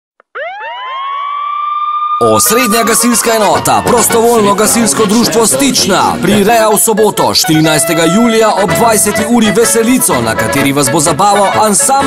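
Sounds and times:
siren winding up: 0:00.2 - 0:05.4.

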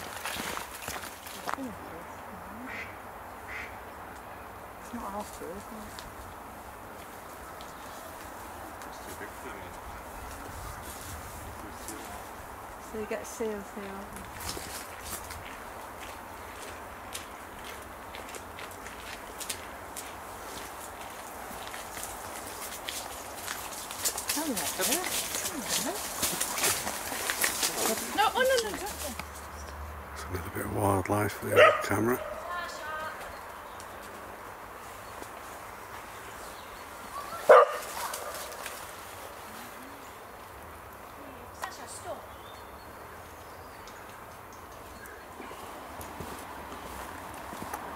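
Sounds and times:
dog barking: 0:31.5 - 0:32.5, 0:37.3 - 0:38.5.

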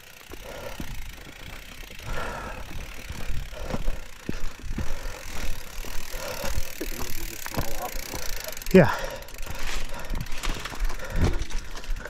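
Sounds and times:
bike clicks and rattles: 0:00.0 - 0:12.0
bike tyre rumble on dirt: 0:00.0 - 0:12.0.

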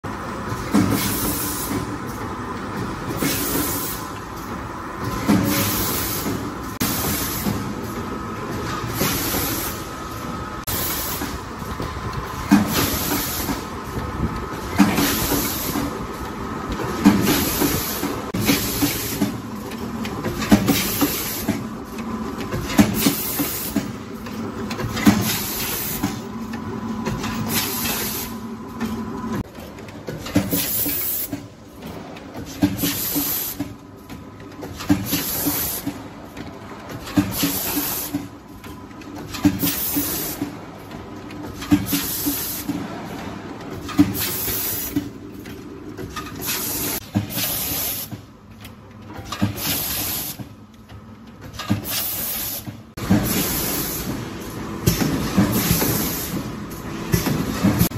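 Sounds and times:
machine mechanism clunking: 0:00.4 - 0:57.9.

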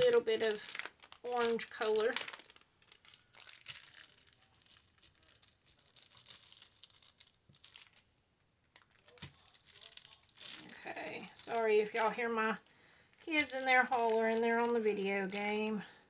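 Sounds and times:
plastic packaging crinkling: 0:00.0 - 0:16.0.

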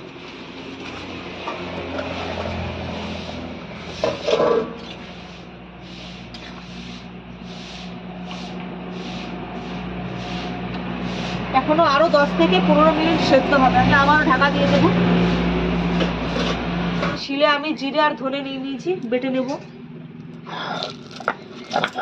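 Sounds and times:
metal spatula scraping pot: 0:01.8 - 0:11.5, 0:14.7 - 0:17.2.

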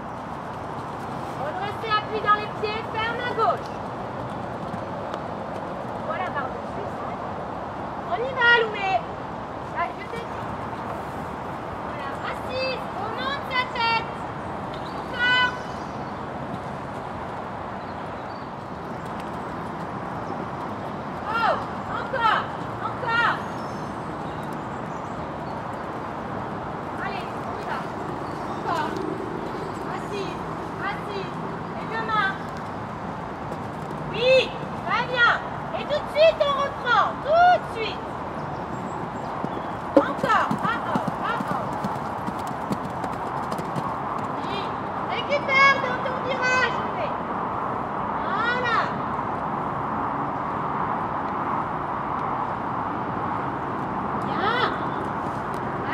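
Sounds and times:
horse hoofbeats on sand: 0:00.0 - 0:06.5, 0:38.5 - 0:44.7.

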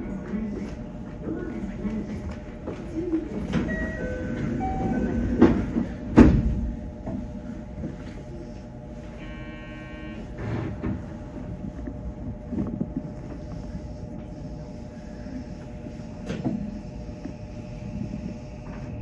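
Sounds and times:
train low steady rumble: 0:00.0 - 0:19.0
buzzing electronic tone: 0:09.2 - 0:10.5.

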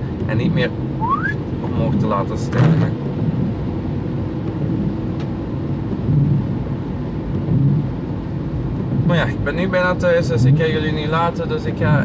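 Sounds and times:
van engine and road noise: 0:00.0 - 0:12.0.

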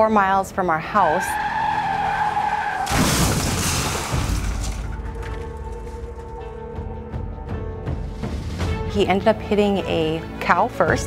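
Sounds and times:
car tyres squealing: 0:00.9 - 0:05.4
loud crash: 0:02.8 - 0:05.5.

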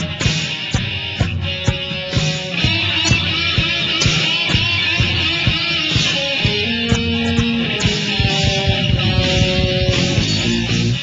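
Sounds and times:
bass guitar: 0:00.0 - 0:11.0
electric guitars: 0:00.0 - 0:11.0
steady drum beat: 0:00.0 - 0:11.0.

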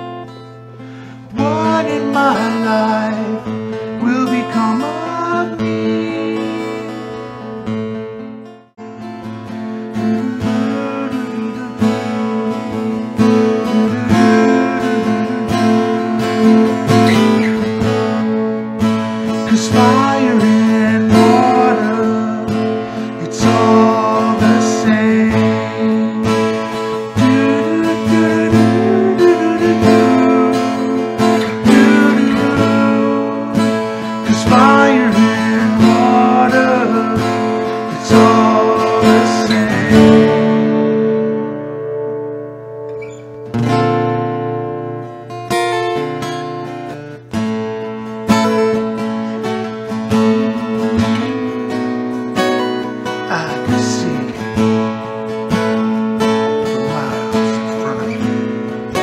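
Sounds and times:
acoustic guitar strumming: 0:00.0 - 0:59.0
man singing: 0:01.3 - 0:07.4, 0:09.9 - 0:18.2, 0:19.3 - 0:41.2, 0:48.3 - 0:59.0.

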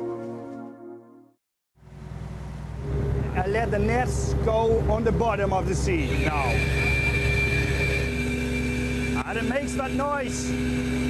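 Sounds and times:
boat engine rumble: 0:01.8 - 0:11.0
net winch whining: 0:02.7 - 0:11.0.

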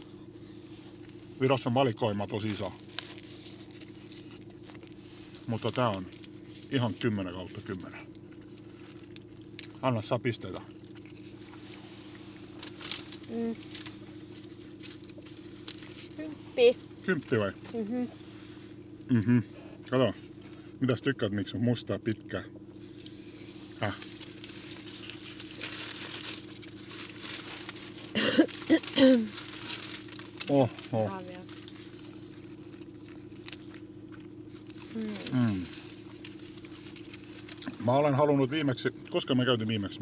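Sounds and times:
car cabin low hum: 0:00.0 - 0:40.0
paper food wrappers crinkling: 0:02.1 - 0:07.8, 0:12.5 - 0:16.1, 0:23.8 - 0:38.1
mouth chewing with clicks and smacks: 0:10.6 - 0:11.8, 0:31.6 - 0:34.9
person humming mm: 0:19.1 - 0:19.6, 0:35.0 - 0:35.7.

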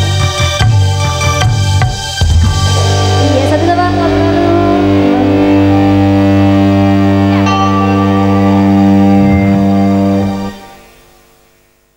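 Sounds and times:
band holding a long chord: 0:00.0 - 0:11.6.

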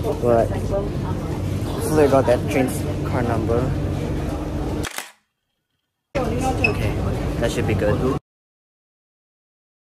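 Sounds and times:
phone camera shutter click: 0:04.8 - 0:05.3.

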